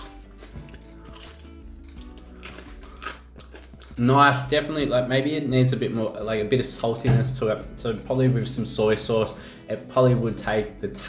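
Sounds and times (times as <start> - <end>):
person chewing crunchy pastry: 0.0 - 4.0
quiet background music: 0.0 - 11.0.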